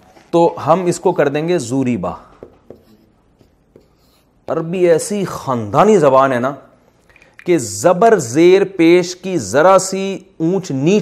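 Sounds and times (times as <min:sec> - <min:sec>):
marker pen scratching on paper: 0:02.3 - 0:04.5.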